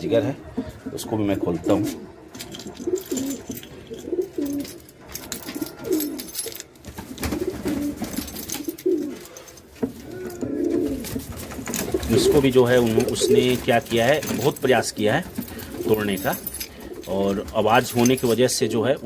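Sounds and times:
pigeons cooing: 0:00.3 - 0:17.4.

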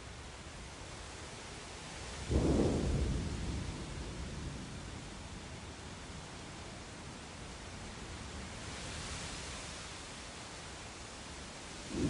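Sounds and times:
thunder clap: 0:02.3 - 0:03.9.

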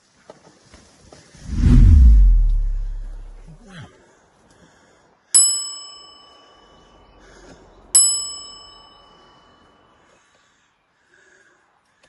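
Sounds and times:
bright bell dings: 0:05.4 - 0:06.9, 0:08.0 - 0:09.7.

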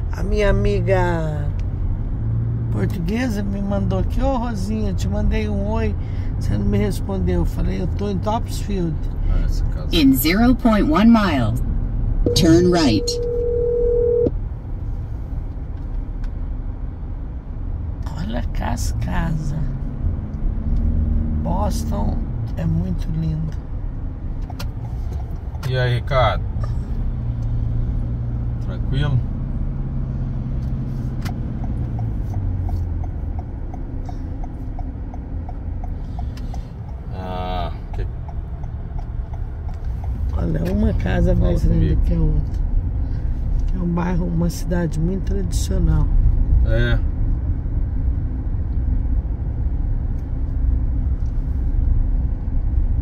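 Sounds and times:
car cabin road rumble: 0:00.0 - 0:53.0
electronic tone: 0:12.3 - 0:14.3
turn indicator ticking: 0:21.8 - 0:28.7, 0:30.4 - 0:43.0.

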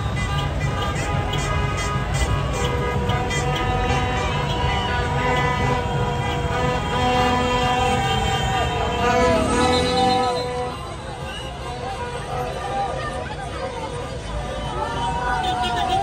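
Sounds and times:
car horns honking: 0:00.0 - 0:13.2
crowd voices: 0:00.0 - 0:16.0.

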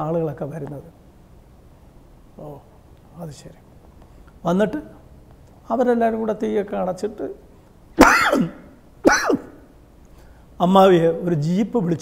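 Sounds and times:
man coughing: 0:08.0 - 0:09.6.

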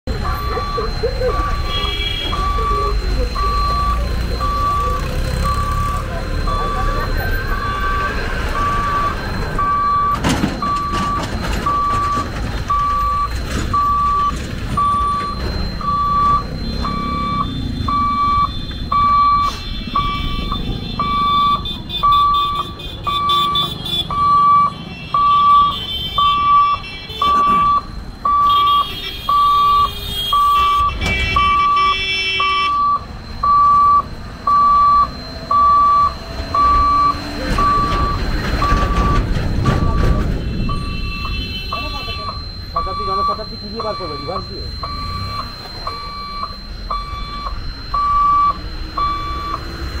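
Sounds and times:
level crossing warning buzzer: 0:00.1 - 0:50.0
rumble of passing trucks: 0:00.1 - 0:50.0
vehicle horns: 0:01.4 - 0:02.8, 0:07.4 - 0:08.9, 0:18.3 - 0:33.0, 0:36.6 - 0:43.3.

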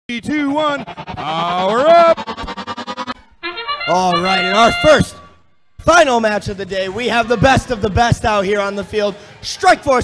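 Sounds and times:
announcer talking: 0:00.1 - 0:08.8
electronic brass-like fanfare: 0:00.5 - 0:05.8.

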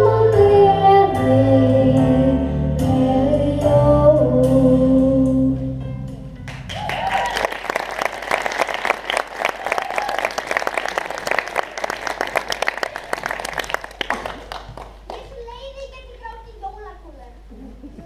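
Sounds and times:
audience applauding: 0:06.5 - 0:15.4.

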